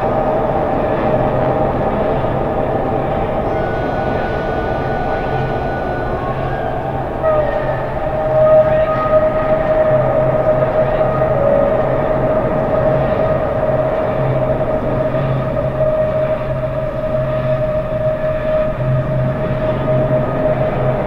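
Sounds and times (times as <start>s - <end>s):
subway train rumble: 0.0s - 21.0s
whining tones: 0.0s - 21.0s.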